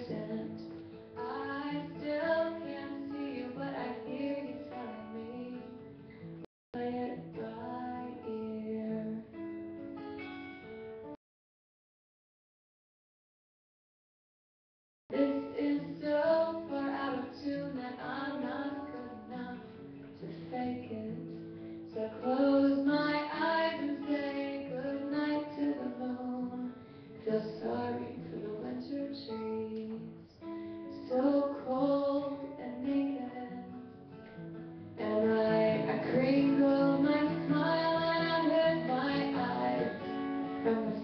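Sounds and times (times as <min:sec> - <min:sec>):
woman singing: 0:00.0 - 0:05.8, 0:06.8 - 0:09.4, 0:15.1 - 0:33.9, 0:34.9 - 0:41.0
strummed acoustic guitar: 0:00.0 - 0:11.2, 0:15.1 - 0:41.0.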